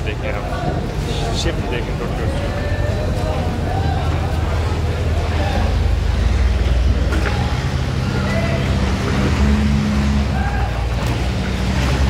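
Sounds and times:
faint voices of people: 0.0s - 11.8s
large engine droning: 0.0s - 12.0s.

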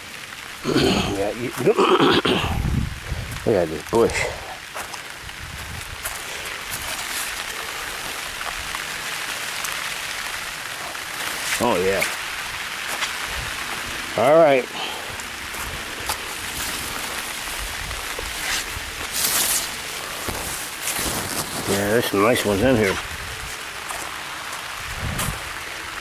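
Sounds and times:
light rain on leaves: 0.0s - 26.0s.

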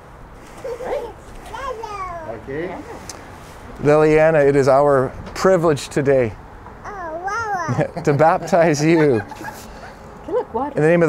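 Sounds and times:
toddler whining cries: 0.6s - 2.4s, 6.8s - 7.9s
man speaking: 2.2s - 3.0s, 3.8s - 6.4s, 7.7s - 9.8s, 10.8s - 11.0s.

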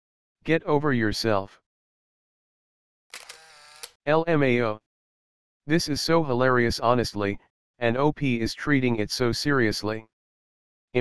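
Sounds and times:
camera shutter sound effect: 3.1s - 4.0s.

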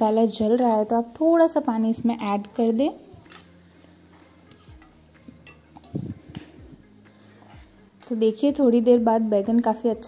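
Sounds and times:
spoon scraping and clinking pan: 4.4s - 6.4s.

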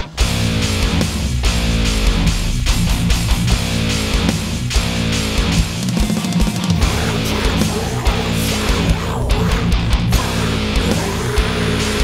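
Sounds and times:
metalcore song: 0.0s - 12.0s.

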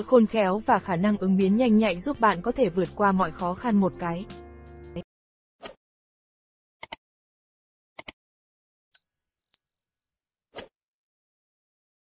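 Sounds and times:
mouse double click: 6.8s - 7.0s, 8.0s - 8.2s
notification bell ding: 9.0s - 10.8s.

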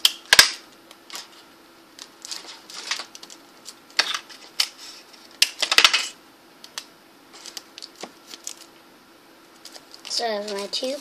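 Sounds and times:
aluminum foil crinkling: 2.0s - 6.1s, 7.3s - 8.7s, 9.6s - 11.0s.

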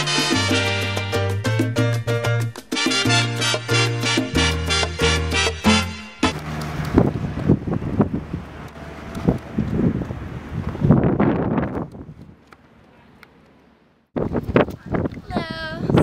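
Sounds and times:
wind buffeting microphone: 6.7s - 12.5s, 14.1s - 16.0s.

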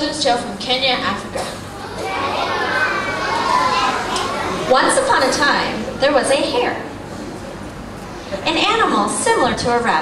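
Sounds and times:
children chattering: 1.4s - 7.6s.

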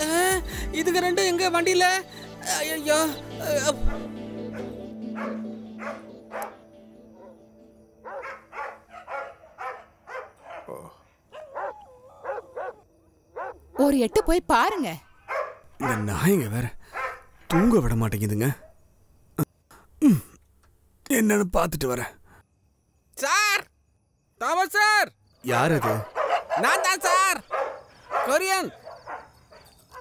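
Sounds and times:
held music chord: 0.9s - 8.1s
dog barking: 3.9s - 6.6s, 7.2s - 7.4s, 8.0s - 14.4s, 15.2s - 16.3s, 16.9s - 17.8s, 25.7s - 30.0s.

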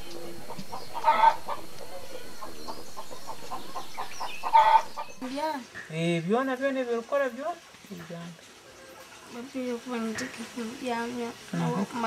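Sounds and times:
chicken calling: 0.0s - 5.4s
faint chirping: 0.0s - 6.3s.

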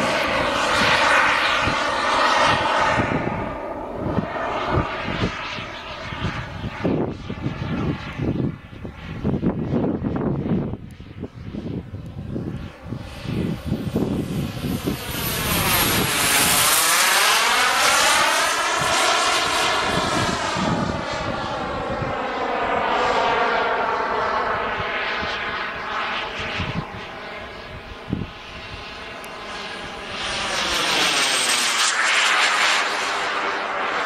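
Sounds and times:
propeller aircraft engine drone: 0.0s - 34.0s.

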